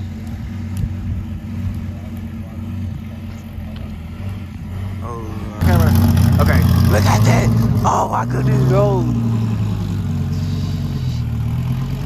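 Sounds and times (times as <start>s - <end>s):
car engine idling: 0.0s - 12.0s
car engine revving pulling away: 0.0s - 12.0s.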